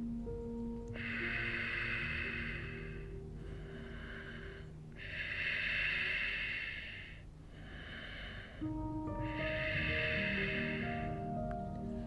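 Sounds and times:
soft background music: 0.0s - 12.0s
slow long breath: 0.9s - 12.0s.

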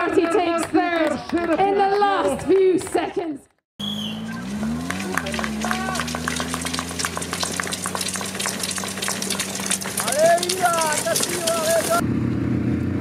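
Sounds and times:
crowd shouting: 4.0s - 12.0s
dense patter of sharp clicks: 5.0s - 12.0s.

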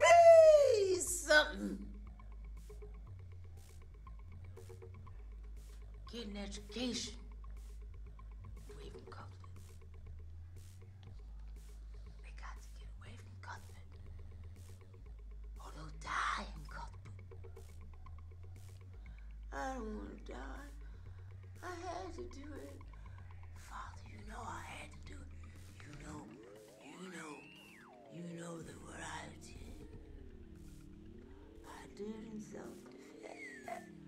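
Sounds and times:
steady low hum: 0.0s - 34.0s
woman whispering: 8.7s - 9.6s, 12.1s - 14.1s, 15.6s - 17.3s, 21.6s - 23.0s, 23.6s - 29.9s, 31.3s - 34.0s.

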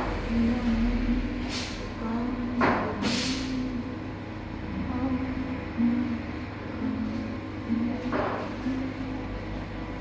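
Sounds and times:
steady low hum: 0.0s - 10.0s
short burst of hissing: 3.0s - 3.5s.

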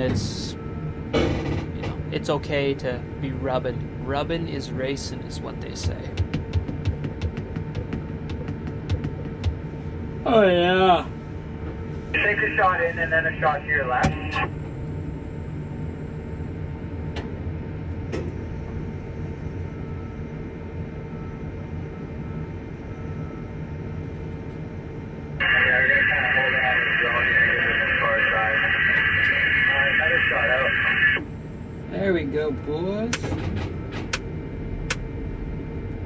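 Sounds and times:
steady low hum: 0.0s - 36.0s
voice over two-way radio: 12.2s - 14.5s, 25.4s - 31.2s.

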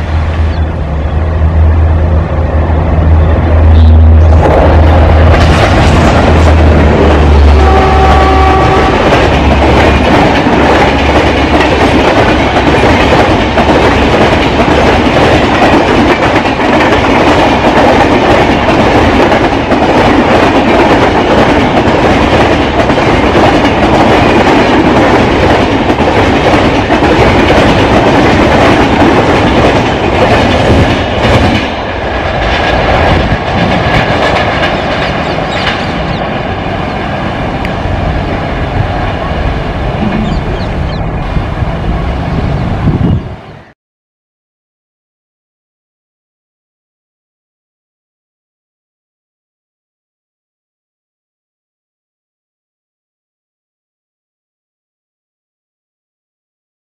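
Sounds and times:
train rushing past: 0.0s - 43.8s.

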